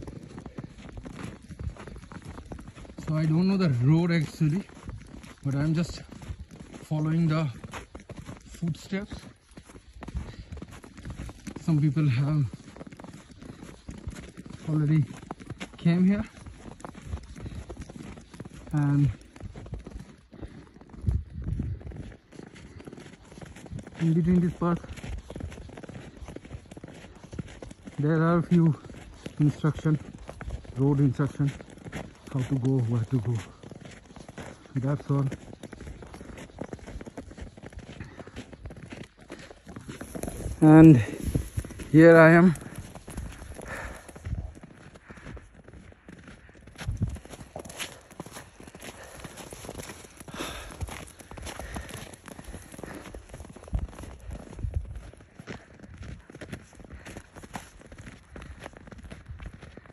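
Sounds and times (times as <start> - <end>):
footsteps crunching on snow: 0.0 - 59.9.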